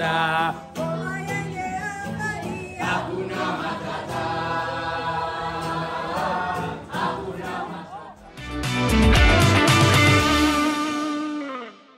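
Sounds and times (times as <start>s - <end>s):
choir holding a chord: 2.9s - 8.2s.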